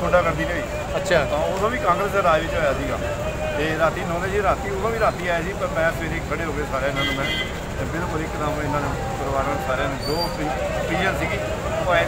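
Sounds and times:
low rumble of street traffic: 0.0 - 12.0
man talking: 0.0 - 12.0.

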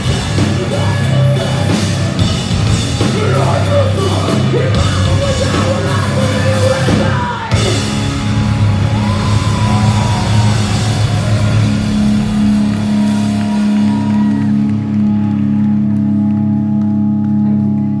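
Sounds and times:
live rock band playing: 0.0 - 17.4.

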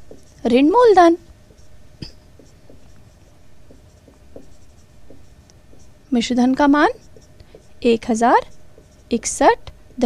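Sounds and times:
pen scratching writing: 0.0 - 0.4, 1.4 - 9.3.

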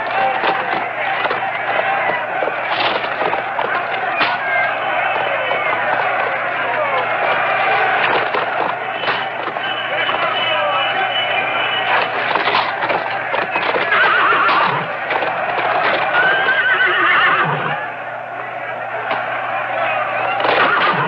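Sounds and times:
hooves clattering: 0.0 - 17.8, 18.9 - 21.0
horses whinnying: 0.0 - 17.8, 20.3 - 21.0.

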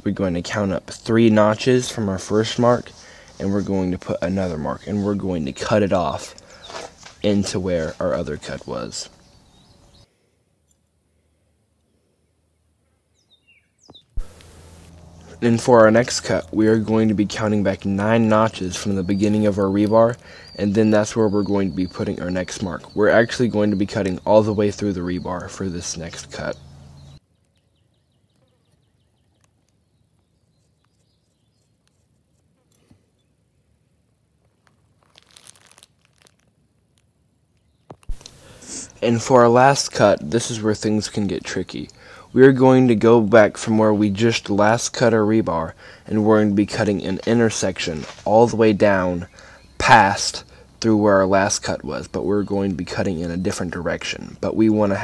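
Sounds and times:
brief rustling: 6.3 - 8.0, 34.4 - 37.1.

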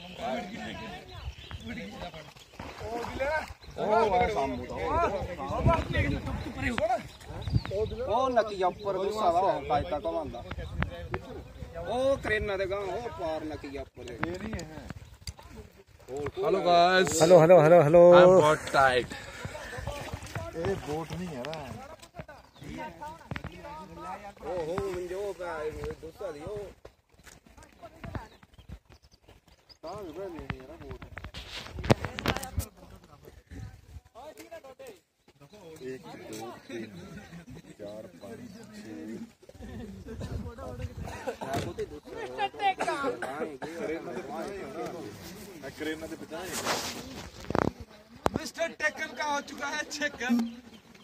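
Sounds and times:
men talking indistinctly: 0.0 - 27.0, 29.7 - 51.0
person speaking: 50.2 - 50.7.

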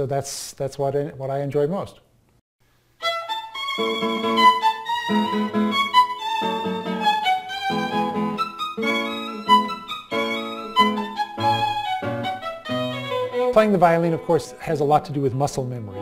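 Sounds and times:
violin melody: 3.0 - 16.0.

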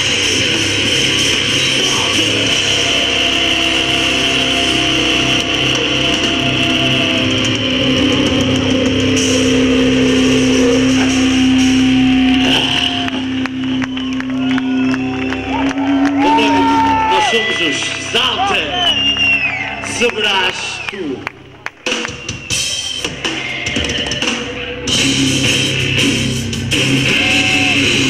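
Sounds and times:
rock band playing live: 0.0 - 18.5, 21.7 - 28.0
crowd clapping and cheering: 10.6 - 24.8, 27.0 - 28.0.

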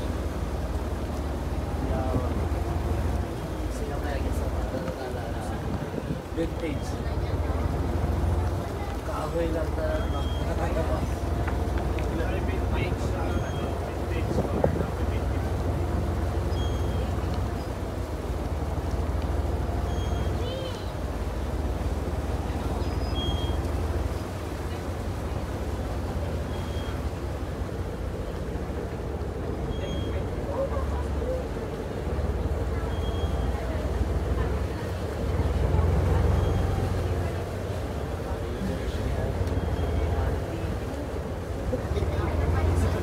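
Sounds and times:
people talking: 0.0 - 43.0
small boat engine rumbling: 0.0 - 43.0.

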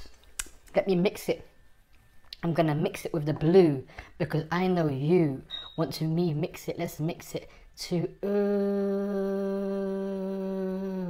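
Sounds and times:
man humming a steady note: 8.2 - 11.0.

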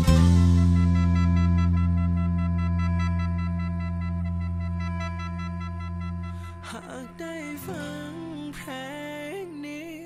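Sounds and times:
low electric bass note ringing: 0.0 - 8.6
backing track held chord: 0.0 - 10.0.

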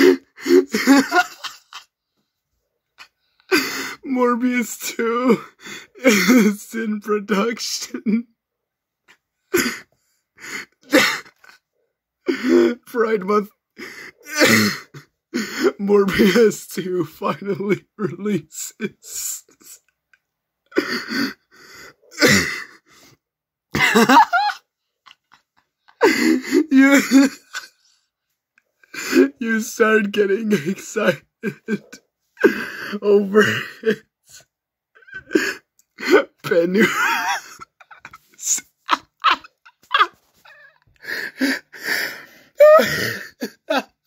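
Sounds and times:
person laughing hard: 0.0 - 1.9, 23.8 - 27.9, 35.0 - 44.0
wheezing breathy gasps: 20.7 - 23.2, 41.0 - 43.4.

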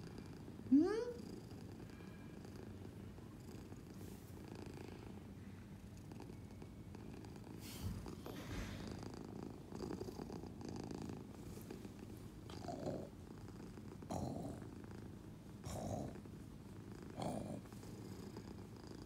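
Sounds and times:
cat purring: 0.0 - 19.0.

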